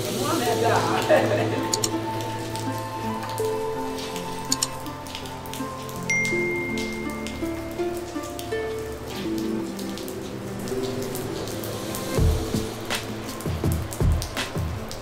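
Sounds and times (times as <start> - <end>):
rain on tiles: 0.0 - 15.0
slow background music: 0.0 - 15.0
drops ticking: 1.6 - 3.4, 4.1 - 11.6.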